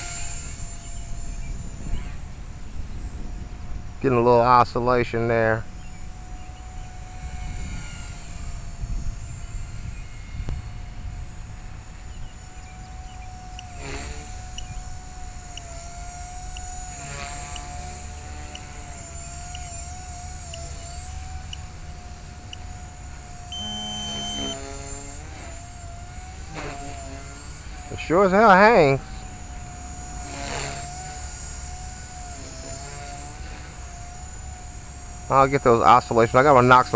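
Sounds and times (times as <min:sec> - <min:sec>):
wind rumble on microphone: 0:00.0 - 0:23.6
rc helicopter whine: 0:00.0 - 0:36.9
brief beep-like tone: 0:23.5 - 0:24.6.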